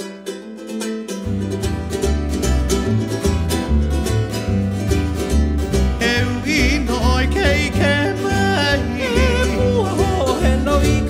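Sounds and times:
plucked and strummed strings: 0.0 - 11.0
deep bass notes: 1.3 - 11.0.

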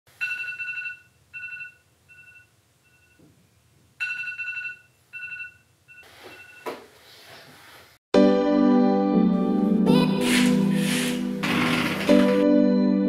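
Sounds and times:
smartphone ringing tone beeps: 0.2 - 3.2, 4.0 - 6.7.

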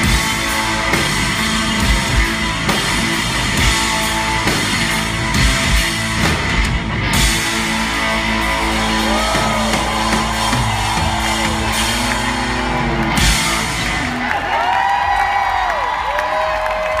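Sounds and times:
live rock band playing: 0.0 - 15.2
crowd whooping and cheering: 7.6 - 17.0.

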